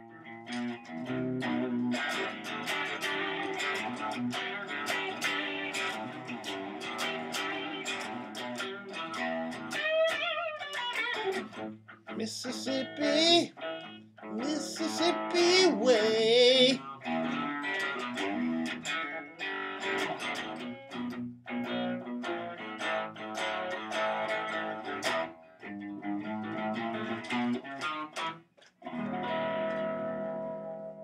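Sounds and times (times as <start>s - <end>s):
guitar plucking and strumming: 0.0s - 31.0s.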